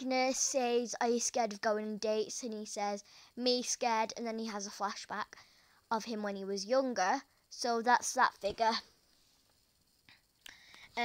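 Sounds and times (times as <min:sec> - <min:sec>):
faint breath: 0:03.0 - 0:03.4, 0:05.3 - 0:05.9, 0:10.1 - 0:11.0.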